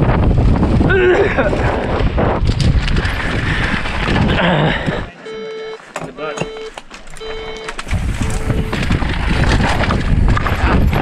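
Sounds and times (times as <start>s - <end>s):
bike tyres rumbling over dirt: 0.0s - 5.1s, 6.9s - 11.0s
wind rush: 0.0s - 5.1s, 7.8s - 11.0s
electronic timer beeps: 5.2s - 8.8s.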